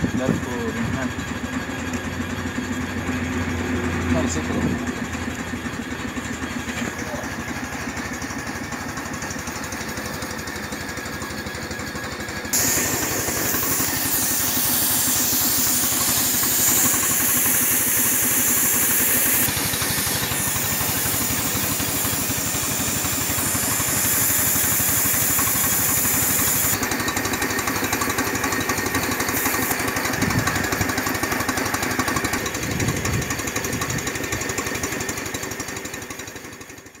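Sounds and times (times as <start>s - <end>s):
motor pulsing: 0.0s - 35.4s
loud rushing hiss: 12.4s - 32.6s.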